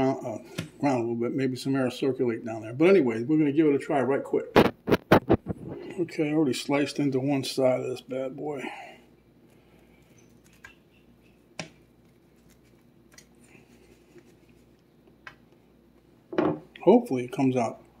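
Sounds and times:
man speaking: 0.0 - 4.5, 5.9 - 8.8, 16.8 - 17.8.

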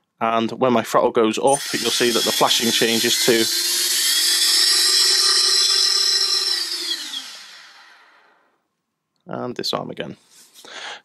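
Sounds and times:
drone motors whining: 1.5 - 8.4.

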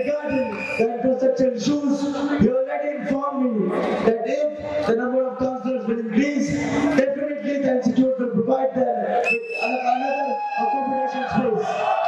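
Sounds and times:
high whistling tone: 0.0 - 0.9, 9.2 - 11.0
man speaking into a microphone: 0.0 - 11.8.

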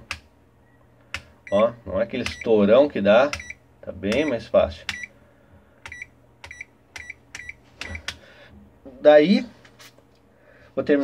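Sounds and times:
short meter beeps: 5.9 - 8.0.

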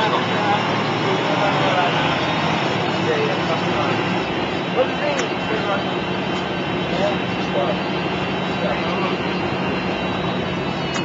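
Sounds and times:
bus diesel engine: 0.0 - 11.0
faint passengers' voices: 0.0 - 11.0
road noise: 0.0 - 11.0.

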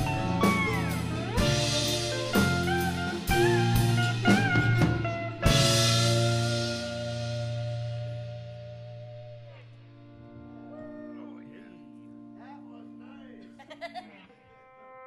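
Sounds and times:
lead guitar string bends: 0.0 - 4.4, 5.0 - 15.0
bass guitar: 0.0 - 15.0.

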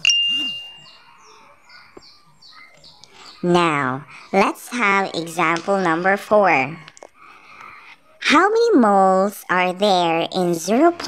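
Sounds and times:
bright bell-like ding: 0.0 - 1.0
faint bird chirps: 0.0 - 5.2.

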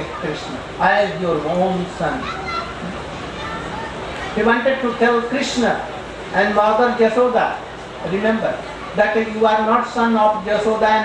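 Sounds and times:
faint children's voices and chatter: 0.0 - 11.0.

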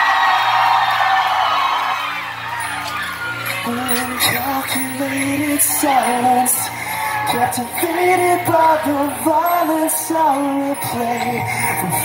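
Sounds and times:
crowd cheering and whooping: 0.0 - 12.0
band music: 2.3 - 12.0.

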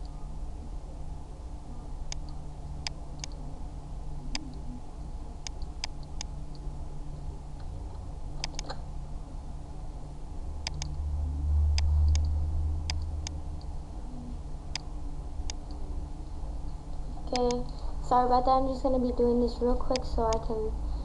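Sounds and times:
low hum: 0.0 - 21.0
computer mouse clicks: 2.1 - 3.4, 8.4 - 8.8, 10.6 - 11.0, 11.7 - 13.7.

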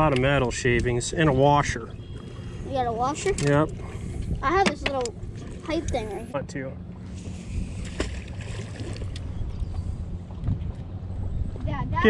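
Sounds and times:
boat motor humming: 0.0 - 12.0
wind on microphone: 2.6 - 6.3, 7.2 - 12.0.

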